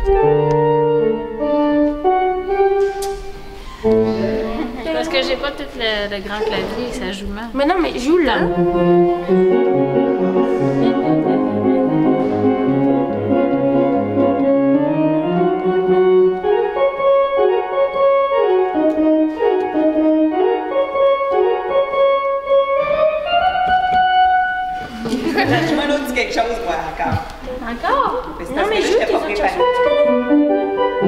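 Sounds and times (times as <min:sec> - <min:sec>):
church organ playing: 0:00.0 - 0:04.8, 0:08.4 - 0:24.9, 0:29.6 - 0:31.0.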